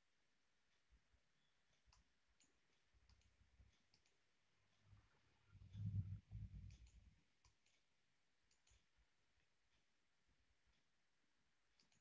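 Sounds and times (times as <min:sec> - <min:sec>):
faint computer mouse clicks: 0:01.8 - 0:04.2, 0:11.8 - 0:12.0.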